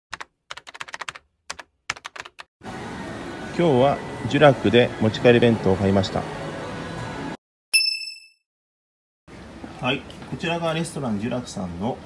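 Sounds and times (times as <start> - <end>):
computer keyboard typing: 0.1 - 2.5.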